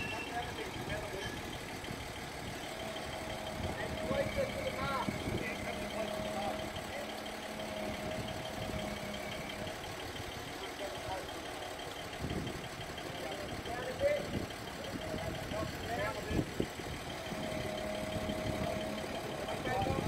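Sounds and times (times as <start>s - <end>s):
diesel engine idling: 0.0s - 20.0s.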